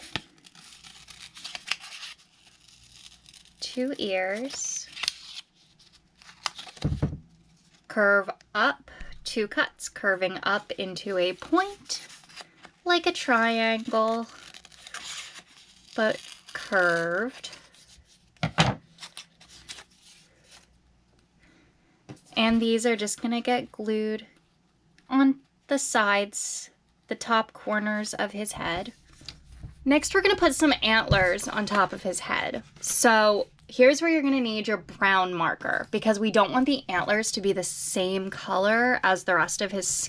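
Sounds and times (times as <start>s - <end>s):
faint paper rustle: 0.0s - 7.9s, 13.5s - 20.8s.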